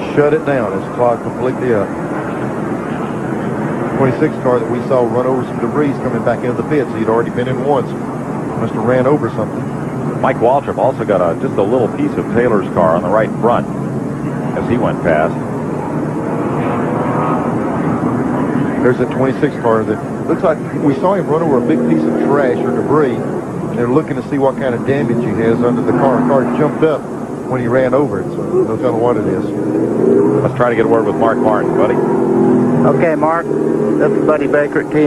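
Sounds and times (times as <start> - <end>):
car engines droning: 0.0 - 35.0.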